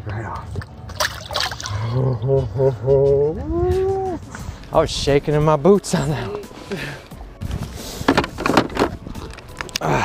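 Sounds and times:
water splash: 0.9 - 1.8.

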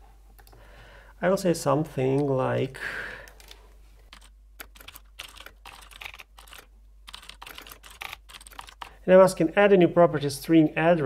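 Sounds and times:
typing on computer keyboard: 3.4 - 9.0.

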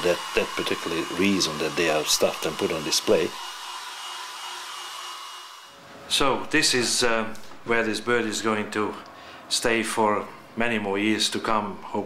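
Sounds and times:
hair dryer blowing: 0.0 - 5.8.

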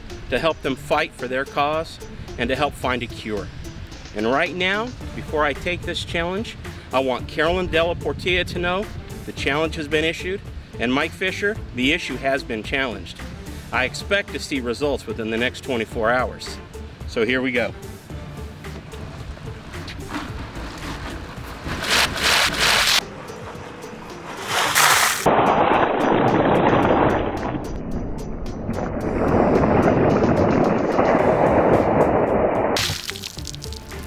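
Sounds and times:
background music: 0.0 - 25.3, 25.9 - 34.0
ice water pouring and splashing: 20.6 - 23.0, 24.5 - 27.5, 32.8 - 34.0.

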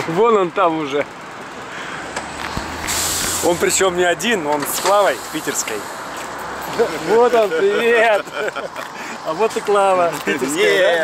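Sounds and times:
traffic noise: 0.0 - 11.0
diesel engine humming low: 1.1 - 7.4
hiss: 2.6 - 3.9, 4.7 - 6.2.

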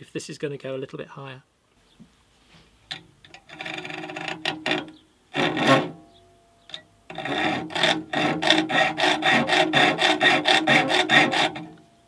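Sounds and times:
hacksaw sawing metal: 3.4 - 6.1, 7.1 - 11.8.

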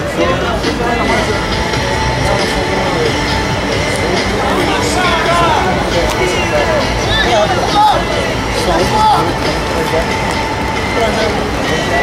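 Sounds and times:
heavy rumbling noise: 0.0 - 12.0
indistinct voices: 0.0 - 12.0.

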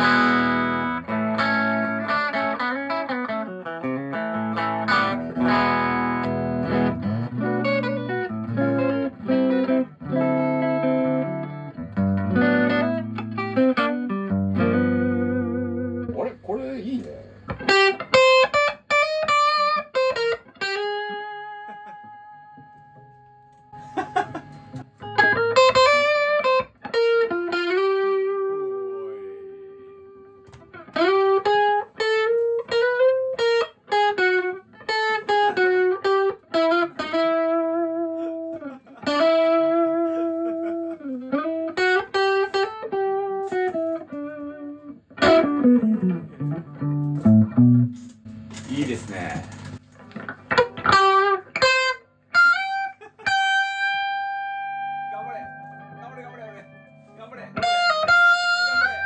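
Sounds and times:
electric guitar lead lines: 0.0 - 59.0.

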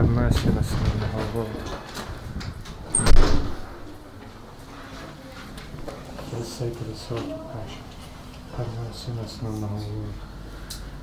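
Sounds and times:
door squeaking: 2.8 - 3.7
door thud: 2.8 - 3.7.

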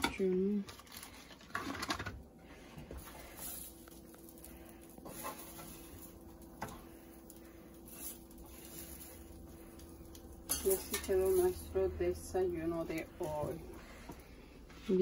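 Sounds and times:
spatula scraping griddle: 2.4 - 15.0.

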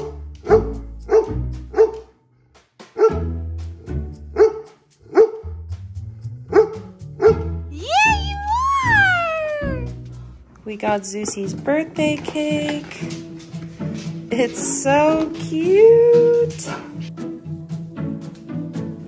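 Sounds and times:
dog barking: 0.0 - 2.1, 3.0 - 3.3, 4.3 - 5.6, 6.5 - 7.6
background music: 0.0 - 19.0.

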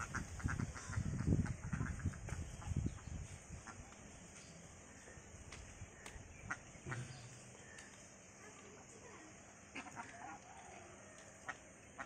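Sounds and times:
ducks calling: 0.0 - 4.0, 5.9 - 8.0, 9.6 - 10.6, 11.3 - 12.0.

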